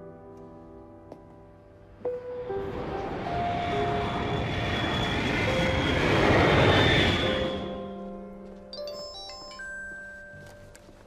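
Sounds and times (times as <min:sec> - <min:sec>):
jet airliner flying overhead: 0:01.9 - 0:08.0.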